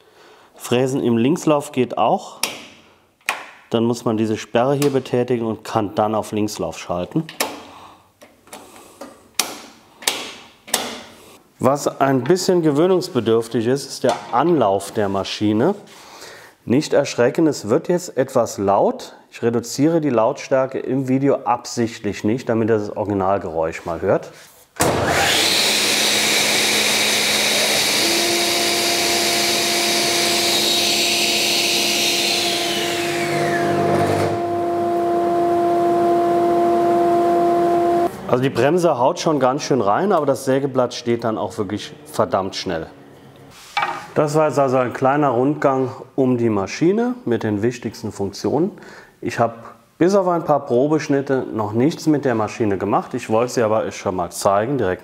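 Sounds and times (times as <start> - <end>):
saw motor whining: 24.8 - 38.2.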